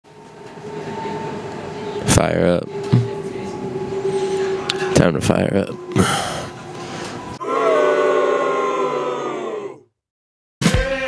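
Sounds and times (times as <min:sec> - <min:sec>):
train carriage rumble and hum: 0:00.0 - 0:09.3.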